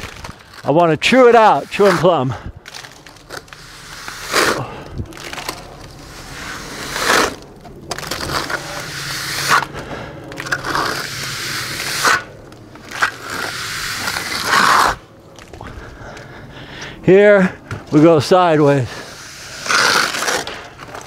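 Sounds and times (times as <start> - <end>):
darby scraping wet plaster: 0.5 - 15.0, 18.9 - 21.0.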